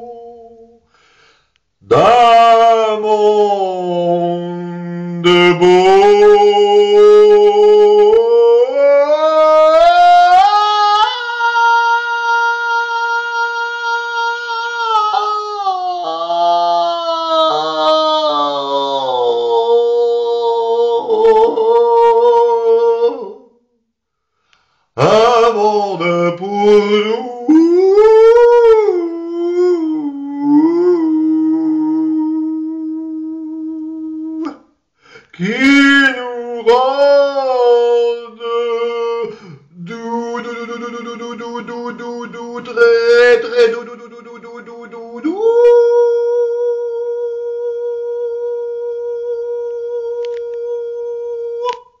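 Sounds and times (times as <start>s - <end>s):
man singing long vowel: 0.0s - 0.9s, 1.8s - 23.8s, 25.0s - 52.0s.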